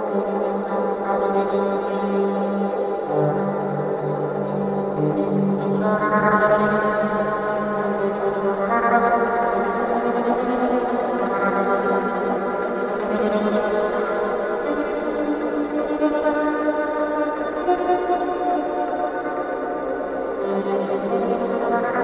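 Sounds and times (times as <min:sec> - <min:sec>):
electric violin mournful melody: 0:00.0 - 0:22.0.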